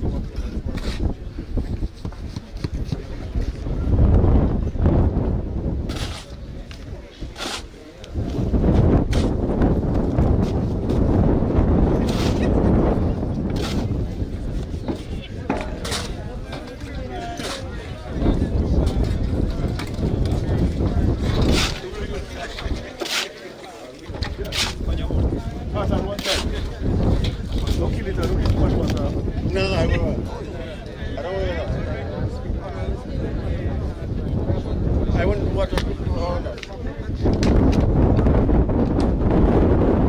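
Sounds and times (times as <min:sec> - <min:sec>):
wind buffeting microphone: 0:00.0 - 0:23.0, 0:24.0 - 0:40.0
shovel scraping wet cement: 0:05.9 - 0:06.4, 0:07.2 - 0:07.8, 0:12.0 - 0:12.6, 0:13.5 - 0:14.0, 0:15.7 - 0:16.2, 0:17.3 - 0:17.7, 0:21.2 - 0:23.6, 0:24.2 - 0:24.9, 0:26.1 - 0:26.7.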